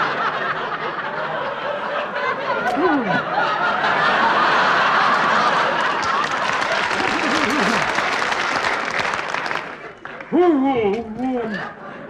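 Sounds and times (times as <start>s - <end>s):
audience laughing: 0.0s - 10.4s, 11.1s - 12.0s.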